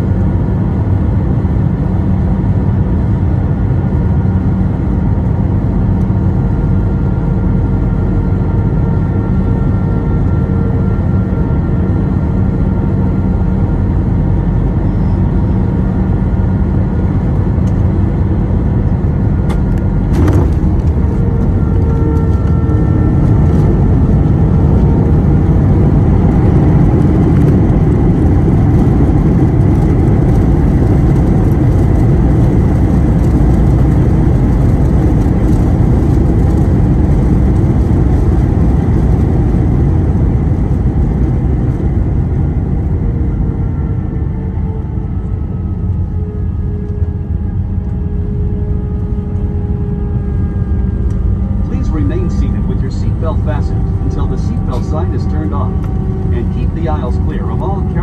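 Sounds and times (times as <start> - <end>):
jet engines and wheels roaring: 0.0 - 58.0.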